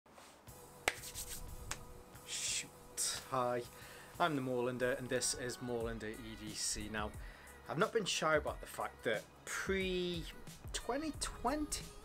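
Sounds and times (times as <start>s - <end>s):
finger snap: 0.8s - 1.9s.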